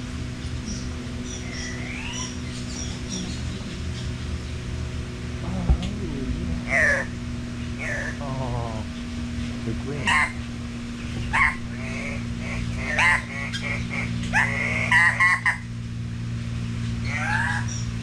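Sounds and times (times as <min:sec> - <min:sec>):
steady low hum: 0:00.0 - 0:18.0
downward-sweeping bird calls: 0:00.4 - 0:04.8, 0:06.6 - 0:08.2, 0:08.8 - 0:15.8, 0:16.7 - 0:18.0.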